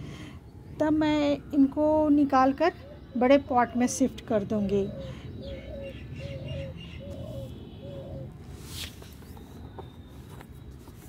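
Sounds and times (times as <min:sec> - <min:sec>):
dove cooing: 0:02.5 - 0:10.4.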